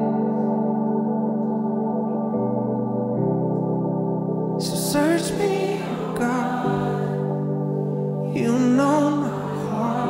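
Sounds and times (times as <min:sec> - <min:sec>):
held keyboard chords: 0:00.0 - 0:10.0.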